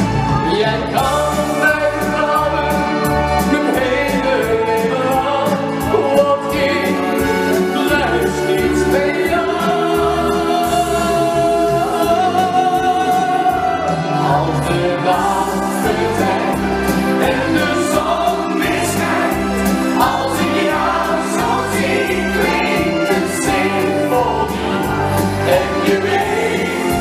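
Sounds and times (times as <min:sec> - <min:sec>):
pop backing track with bass beat: 0:00.0 - 0:27.0
man singing into a microphone: 0:00.4 - 0:16.6.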